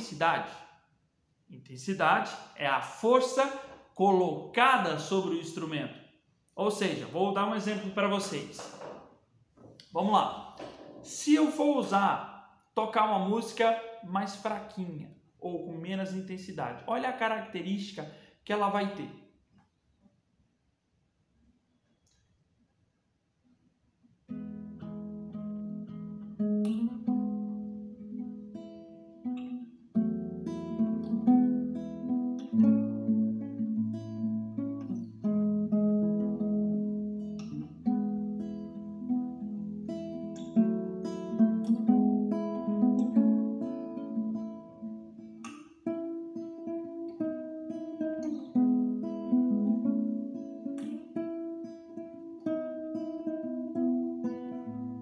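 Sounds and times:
soft classical guitar chords: 24.3s - 55.0s.

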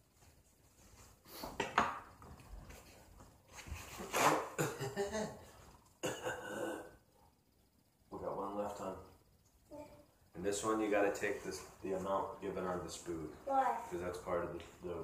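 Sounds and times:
paper towel tearing and rustling: 4.0s - 4.5s.

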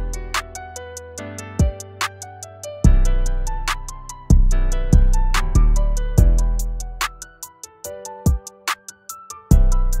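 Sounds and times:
fast hi-hats: 0.0s - 10.0s
trap hip-hop beat: 0.0s - 10.0s.

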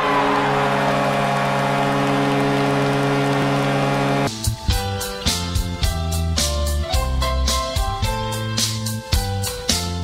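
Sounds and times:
electronic drone of held tones: 0.0s - 4.3s.

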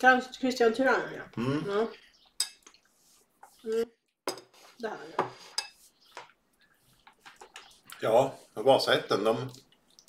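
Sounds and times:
cutlery clinking against a plate: 2.4s - 2.7s, 4.3s - 4.6s.

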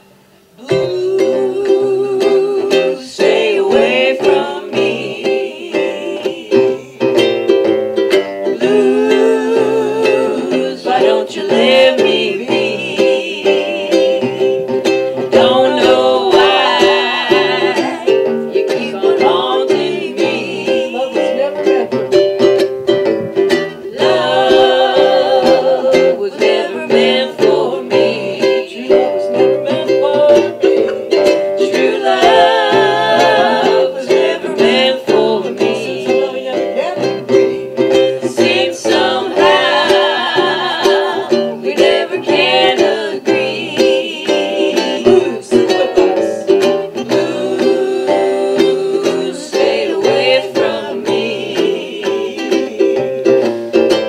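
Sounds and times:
banjo and ukulele playing: 0.0s - 54.0s.

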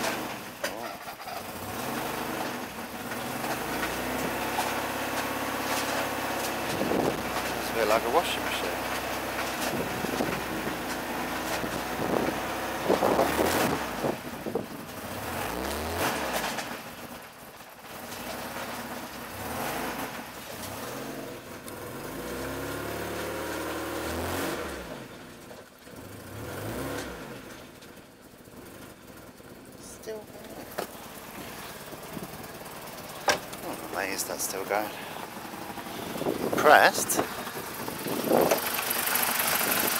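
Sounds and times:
car engine revving rough: 0.0s - 39.9s.

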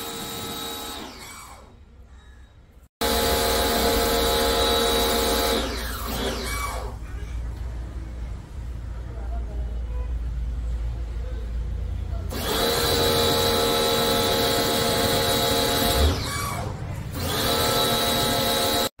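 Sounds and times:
pressure washer high whine: 3.0s - 6.9s, 12.3s - 18.9s.

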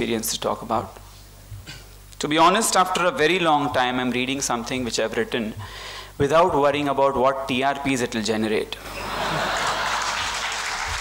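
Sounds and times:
audience laughing: 8.9s - 10.6s
audience applauding: 9.2s - 11.0s.

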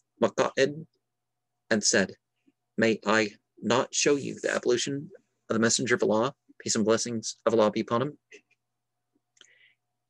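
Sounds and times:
man reading aloud: 0.0s - 1.0s, 1.7s - 8.4s
soft breath: 9.4s - 9.9s.

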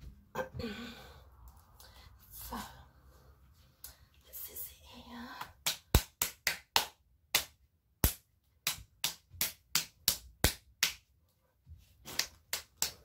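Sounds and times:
hand slapping bare belly: 5.4s - 11.1s, 12.0s - 13.0s.

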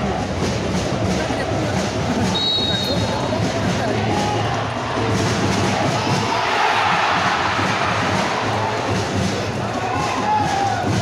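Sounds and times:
stadium crowd chanting and cheering: 0.0s - 11.0s.

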